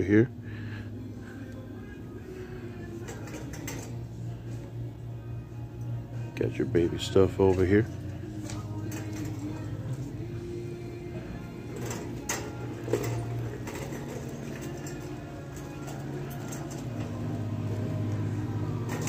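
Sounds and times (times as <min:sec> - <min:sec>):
background music over speakers: 0:00.0 - 0:19.0
shopping cart rattling: 0:02.9 - 0:04.0, 0:07.0 - 0:10.7, 0:11.4 - 0:19.0.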